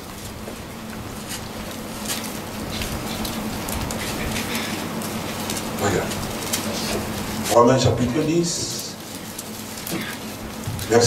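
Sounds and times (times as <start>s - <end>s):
paper pages rustling: 0.0s - 11.0s.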